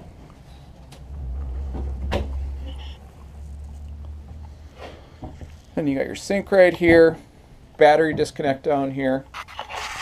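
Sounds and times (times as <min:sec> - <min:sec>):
low rumble: 0:01.0 - 0:04.7.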